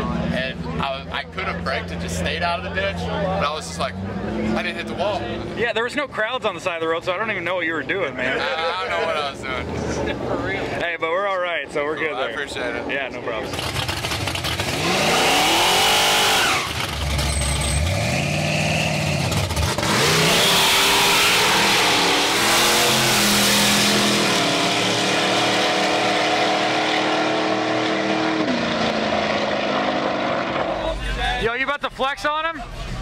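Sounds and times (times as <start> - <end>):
car engines revving: 0.0 - 10.8, 11.6 - 31.5.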